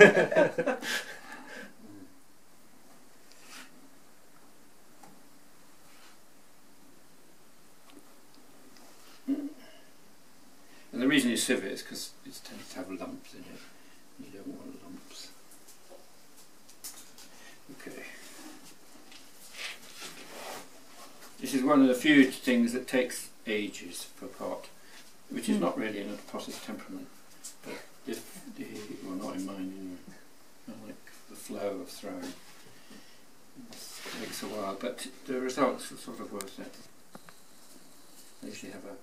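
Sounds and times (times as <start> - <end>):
laughter: 0.0 - 1.2
faint steady hum: 0.0 - 39.0
soft rustle: 3.0 - 3.9, 5.6 - 6.5, 7.8 - 9.3, 12.4 - 22.5, 24.0 - 39.0
people talking: 11.0 - 15.4, 17.7 - 18.2, 21.4 - 24.7, 25.3 - 27.1, 27.7 - 32.4, 33.6 - 36.9, 38.4 - 39.0.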